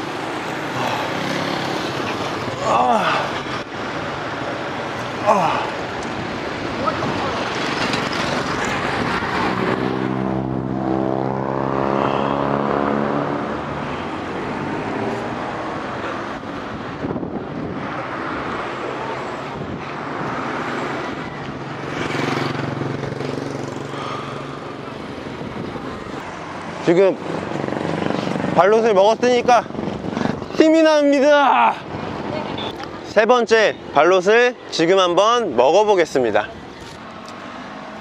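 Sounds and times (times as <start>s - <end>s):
vehicle engine passing by: 0.2s - 2.6s, 6.7s - 28.9s.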